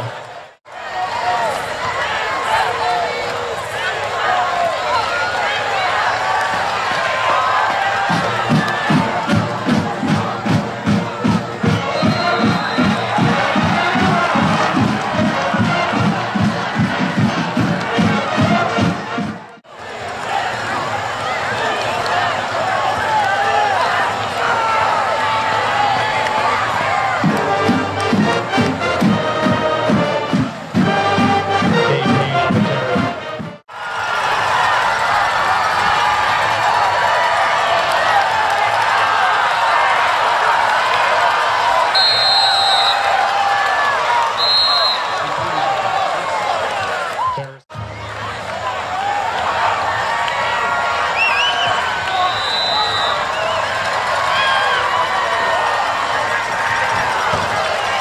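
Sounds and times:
crowd cheering: 0.0 - 58.0
steady drum beat: 8.0 - 19.6, 27.2 - 33.6.

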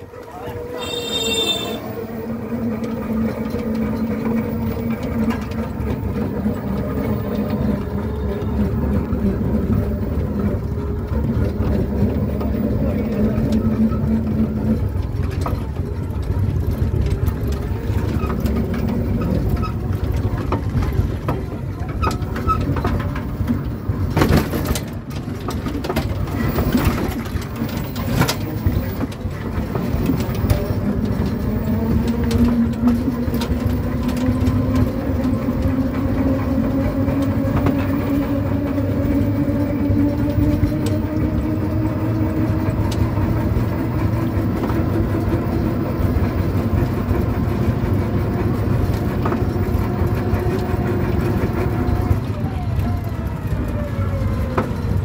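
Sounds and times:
auto-rickshaw motor hum: 0.0 - 55.0
road rumble: 0.0 - 55.0
knocks and rattles: 2.7 - 52.1.

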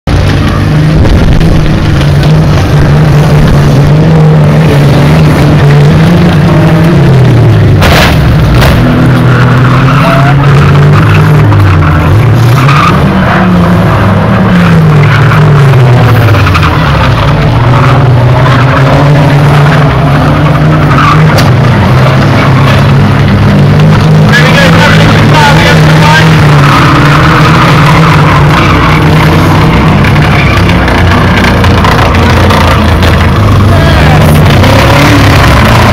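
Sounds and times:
racing car engines: 0.1 - 35.9.

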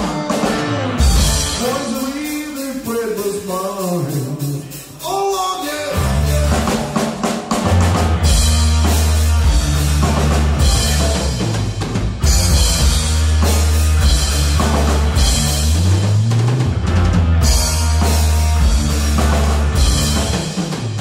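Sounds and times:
heavy rock band playing: 0.0 - 21.0.

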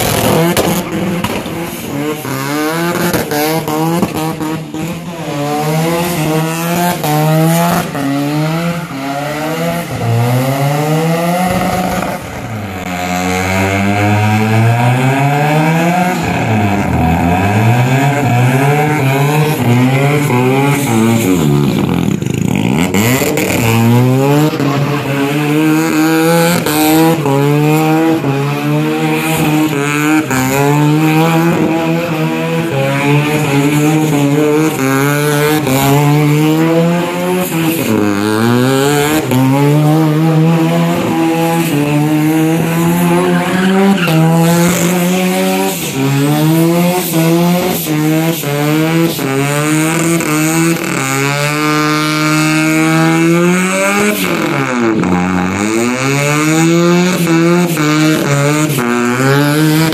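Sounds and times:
rotary engine revving high: 0.0 - 59.9.

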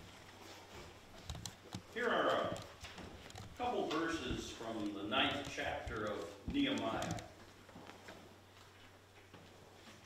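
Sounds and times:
faint knocks and handling: 0.0 - 10.0
person speaking: 1.9 - 2.8, 3.5 - 7.4.

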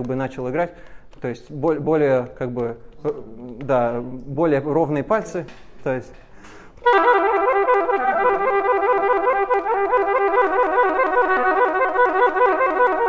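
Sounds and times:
solo oboe fast run: 6.8 - 13.0.

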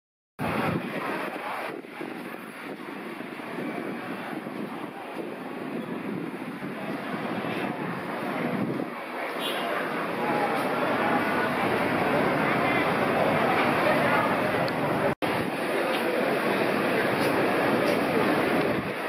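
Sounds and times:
wind on microphone: 0.4 - 9.3, 17.2 - 19.0
distant boat engines droning: 6.7 - 19.0.

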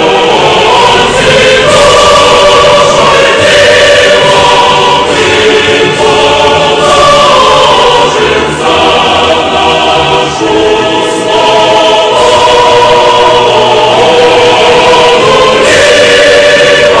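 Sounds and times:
choir singing held chords: 0.0 - 17.0.

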